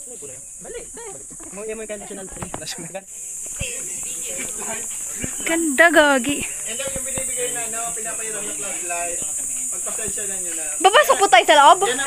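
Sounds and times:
insects hissing: 0.0 - 12.0
voices: 0.0 - 12.0.

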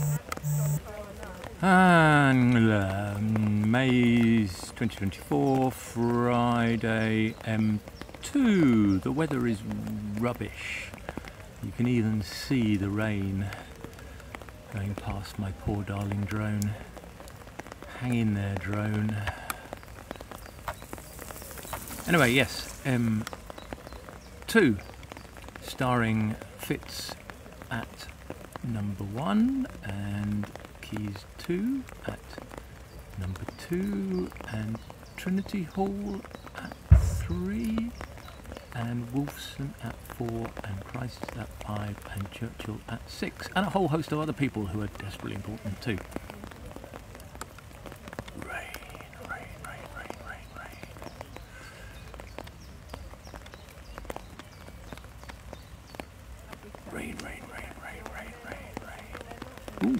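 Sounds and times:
hiss of falling rain: 0.0 - 59.9
raindrops tapping near microphone: 0.0 - 59.9.

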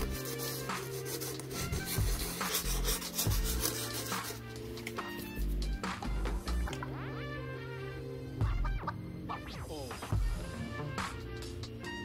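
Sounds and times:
sandpaper scratching leather: 0.0 - 4.6.

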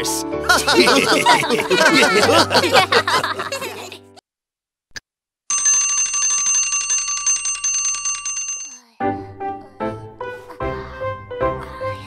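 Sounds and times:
bell ringing in fast trill: 5.5 - 8.8.

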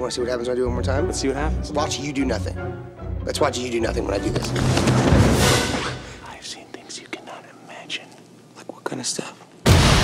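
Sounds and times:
man whispering: 6.1 - 9.5.

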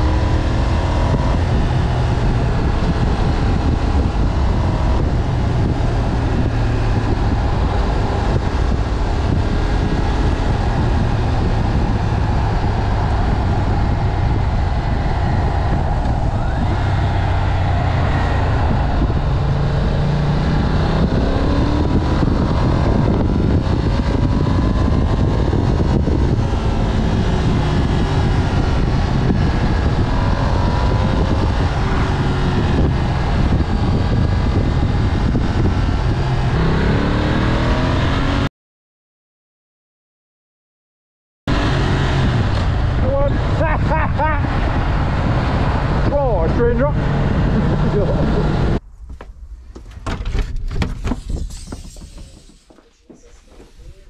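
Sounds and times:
motorcycle engine accelerating: 0.0 - 38.5, 41.5 - 48.9
wind noise on microphone: 0.0 - 38.5, 41.5 - 54.0.

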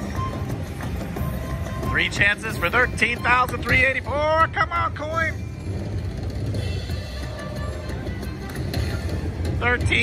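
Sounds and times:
low casino din: 0.0 - 10.0.

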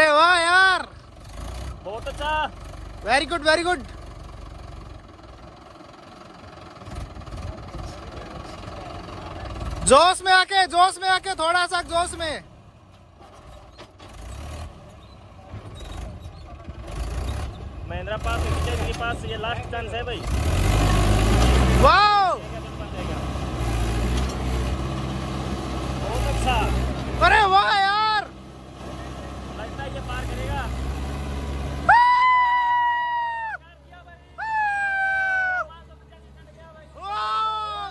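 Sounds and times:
tractor diesel engine under load: 0.0 - 37.9
high-pitched cheering whoop: 31.9 - 33.6, 34.4 - 35.7, 37.0 - 37.9.

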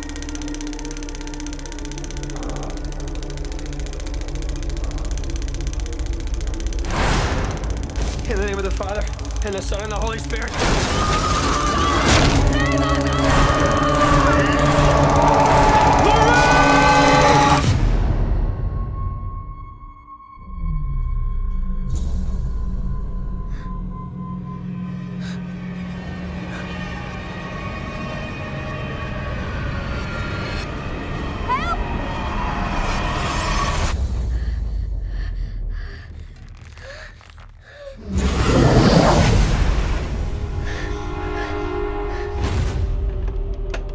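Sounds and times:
low steady drone: 0.0 - 17.8
dissonant music with rattling pulse: 0.0 - 18.2, 21.7 - 37.6
screaming: 11.2 - 17.6
gasping breaths: 34.0 - 38.1.

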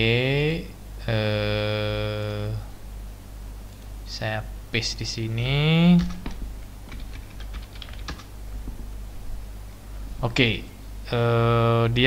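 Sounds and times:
computer keyboard keys clicking: 6.0 - 8.3.

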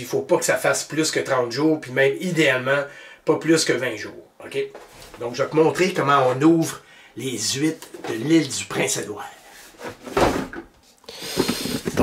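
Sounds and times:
cardboard scraping and rustling: 9.6 - 12.0.

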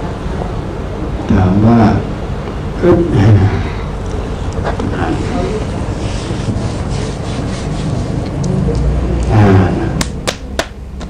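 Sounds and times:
rhythmic scraping strokes: 4.2 - 8.8.

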